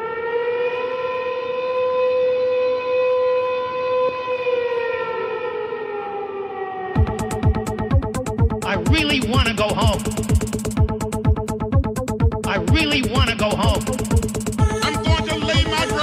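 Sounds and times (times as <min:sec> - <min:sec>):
siren-like electronic tone: 0:00.0 - 0:12.3, 0:13.2 - 0:16.0
electronic drum beat: 0:07.0 - 0:16.0.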